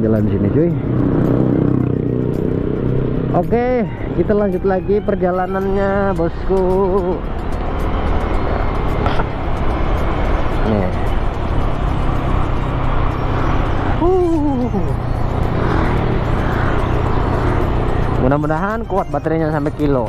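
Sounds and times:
road noise: 0:00.0 - 0:20.0
scooter engine hum: 0:00.0 - 0:20.0.

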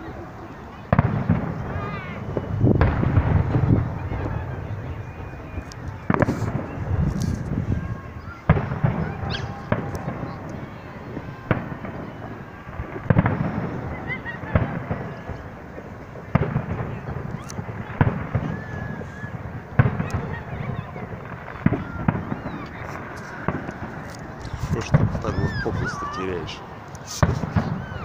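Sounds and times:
distant fireworks bangs: 0:00.0 - 0:28.0.

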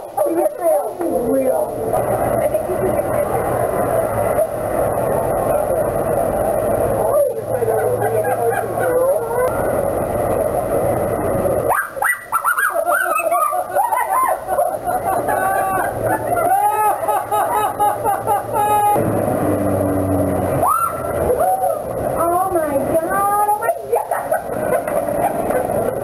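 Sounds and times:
passers-by talking: 0:00.0 - 0:11.8, 0:12.5 - 0:26.0
street background noise: 0:00.0 - 0:26.0.

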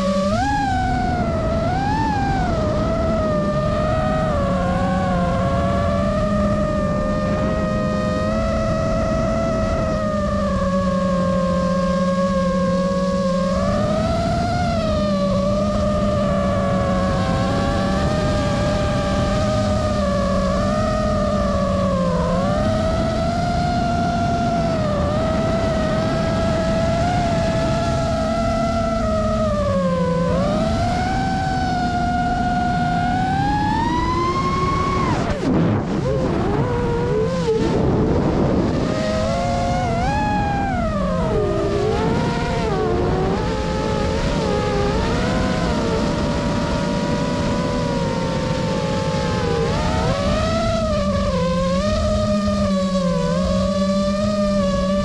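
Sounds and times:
drone motors whining: 0:00.0 - 0:55.0.

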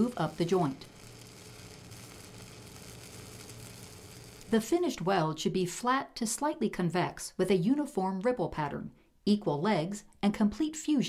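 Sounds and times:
welding arc crackling: 0:00.0 - 0:05.2.

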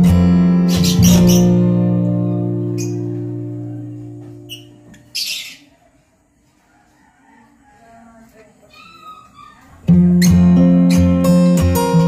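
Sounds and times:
guitar music: 0:00.0 - 0:05.1, 0:09.8 - 0:12.0
harsh high bird call: 0:00.6 - 0:02.0, 0:02.6 - 0:05.7.

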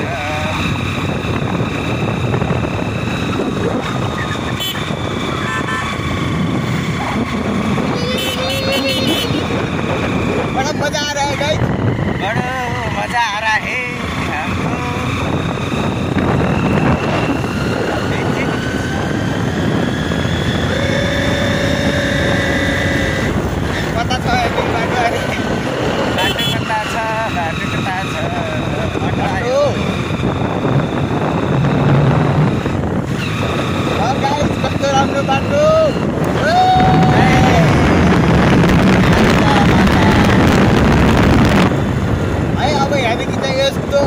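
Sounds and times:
motorcycle engine: 0:00.0 - 0:44.0
wind noise on microphone: 0:00.0 - 0:44.0
person speaking: 0:07.0 - 0:09.6.

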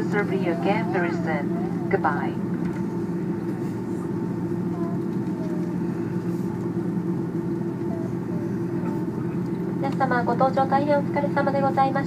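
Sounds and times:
airliner engine drone in cabin: 0:00.0 - 0:12.0.

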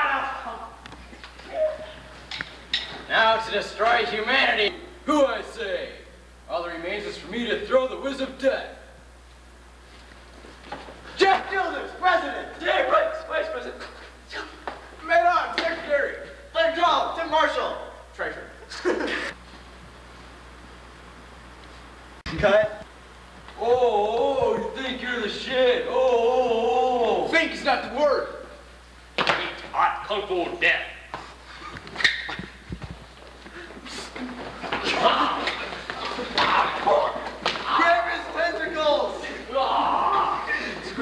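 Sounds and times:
boy calling out: 0:01.5 - 0:02.0
thumps of feet and bodies: 0:31.1 - 0:38.4.

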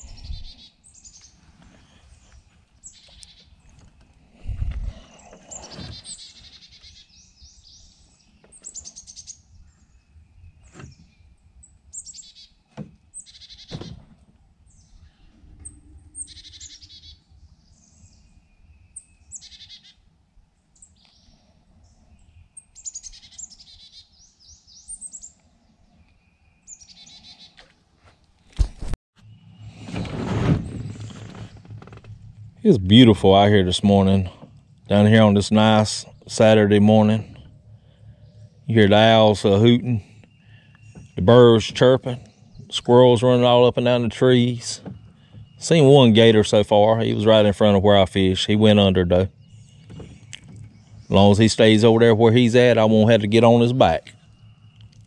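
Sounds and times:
birds chirping and calling: 0:00.0 - 0:20.2, 0:20.8 - 0:27.8, 0:30.7 - 0:55.0.

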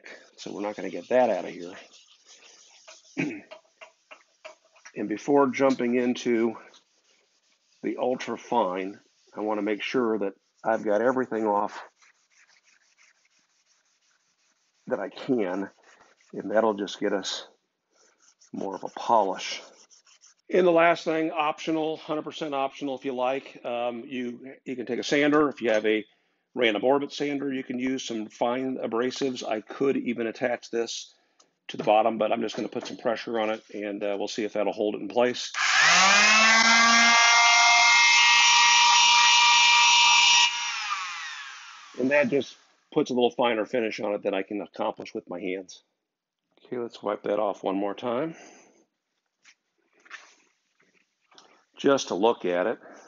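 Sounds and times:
abrasive pad scrubbing metal: 0:00.0 - 0:17.4, 0:18.0 - 0:20.7
electric palm sander whining: 0:35.6 - 0:42.3.

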